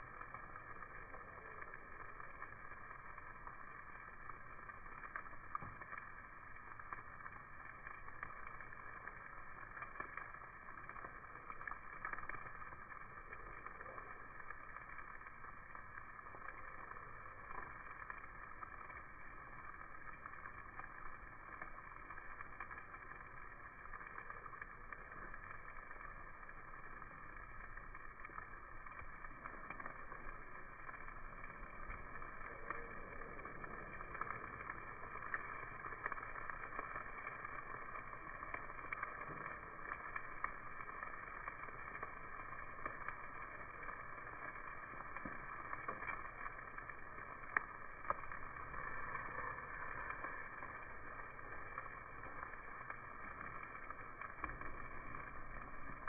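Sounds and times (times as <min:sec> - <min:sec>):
crackles and clicks: 0:00.0 - 0:56.0
meat sizzling on a grill: 0:00.0 - 0:56.0.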